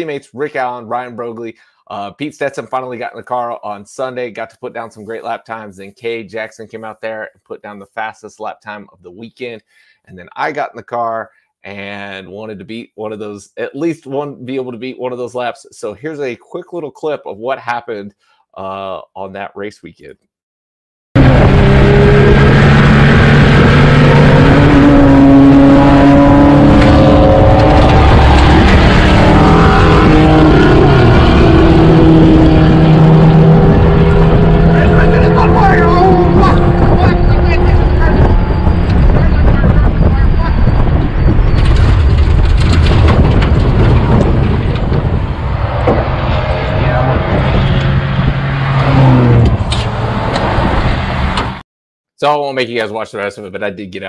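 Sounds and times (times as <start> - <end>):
race car engine: 21.2 - 51.6
wind noise: 21.2 - 51.6
driver shouting: 34.7 - 38.6
rattle: 41.4 - 45.0.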